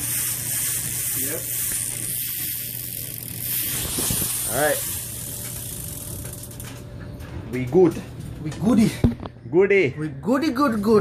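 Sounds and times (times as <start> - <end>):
bicycle wheel whirring: 0.0 - 7.2.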